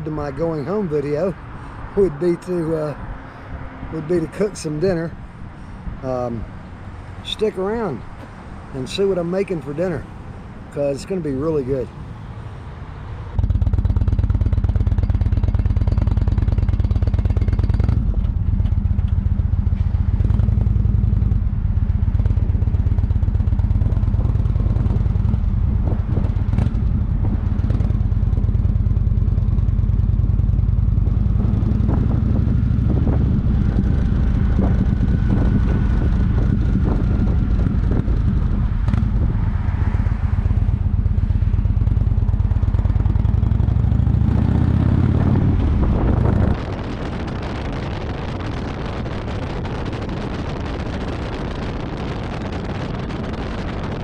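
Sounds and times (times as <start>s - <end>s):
motorcycle engine running: 13.4s - 54.0s.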